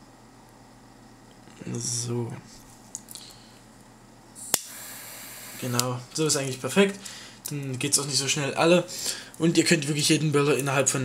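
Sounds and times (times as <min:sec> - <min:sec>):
torch flame hissing: 0:04.3 - 0:06.0
piezo igniter click: 0:04.4 - 0:04.9, 0:05.6 - 0:06.0
butane gas hissing: 0:04.4 - 0:06.0.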